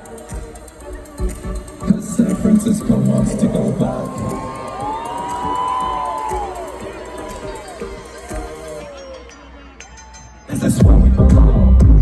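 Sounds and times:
electronic dance music: 0.0 - 12.0
crowd cheering and whooping: 3.9 - 9.4.

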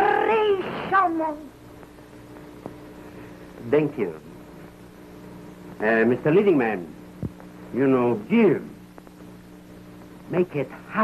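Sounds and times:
faint film soundtrack hum: 0.0 - 11.0.

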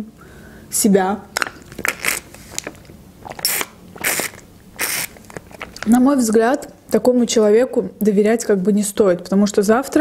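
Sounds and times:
slurping through a straw: 3.2 - 5.8.

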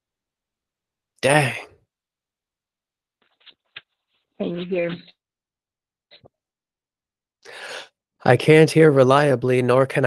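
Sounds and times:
breathy burst of noise: 7.5 - 7.9.

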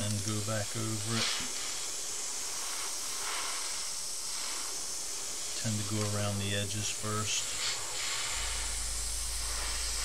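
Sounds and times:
airbrush hissing: 0.0 - 10.0.

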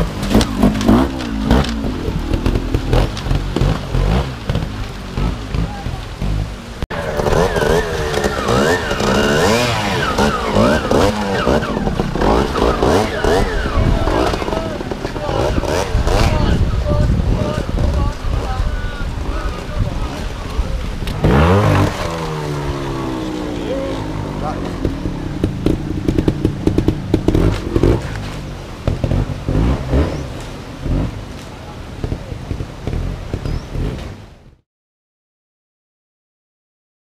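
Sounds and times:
motorcycle engine revving: 0.0 - 34.6.

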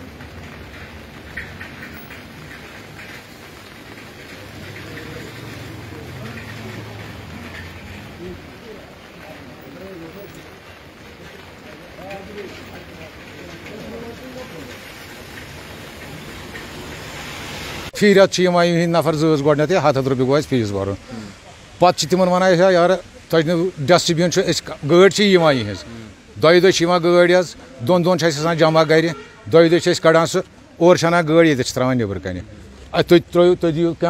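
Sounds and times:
light rain on water and ground: 0.0 - 34.0.

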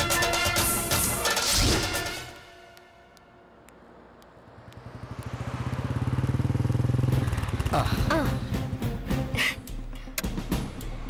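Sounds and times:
motorcycle engine approaching: 4.1 - 9.3.

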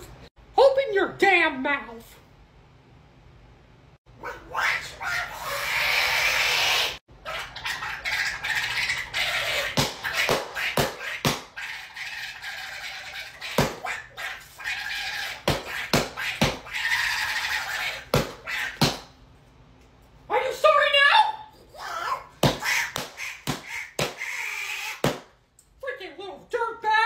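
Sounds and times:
raspy duck-like voice squawking: 4.2 - 19.0, 21.7 - 25.2
sharp smacks: 22.4 - 24.2, 25.0 - 25.4.

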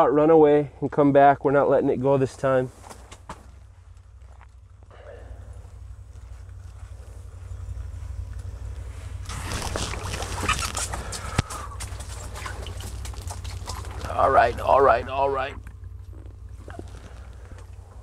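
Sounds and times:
steady low rumble: 0.0 - 18.0
handling and rustling noise: 2.6 - 4.8, 5.8 - 15.0, 15.7 - 18.0.

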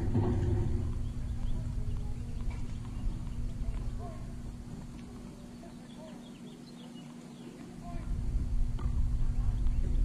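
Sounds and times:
low rumble: 0.0 - 5.0, 7.9 - 10.0
steady low hum: 0.0 - 10.0
bird chirps: 0.5 - 4.4, 5.4 - 8.0.

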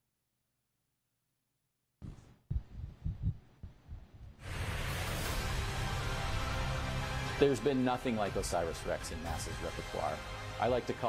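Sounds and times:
deep bass thumps: 2.5 - 4.4.

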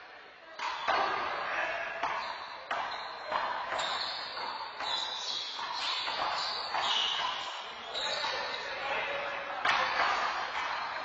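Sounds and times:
players' voices: 0.0 - 11.0.

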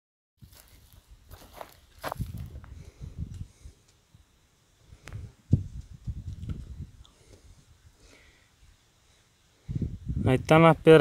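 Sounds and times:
footsteps on stony ground: 0.4 - 4.0
gravel and dry grass crunching: 0.4 - 4.0.

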